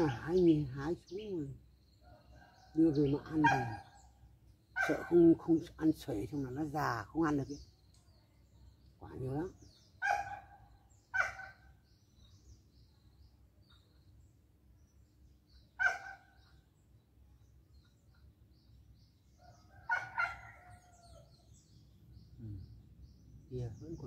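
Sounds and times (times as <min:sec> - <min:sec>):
small birds chirping: 0:00.0 - 0:24.0.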